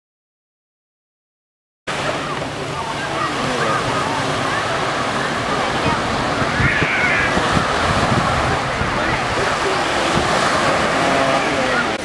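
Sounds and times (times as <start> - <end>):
distant indistinct voices: 1.9 - 12.0
surf washing at shoreline: 1.9 - 12.0
wind buffeting microphone: 2.2 - 12.0.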